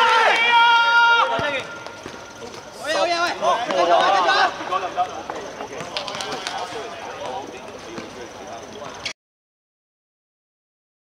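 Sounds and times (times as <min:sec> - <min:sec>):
players shouting in celebration: 0:00.0 - 0:01.9.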